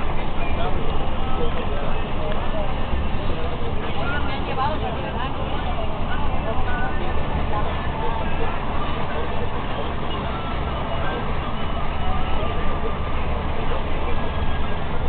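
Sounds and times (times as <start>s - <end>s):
people talking indistinctly: 0.0s - 15.0s
vehicle rumble from inside: 0.0s - 15.0s.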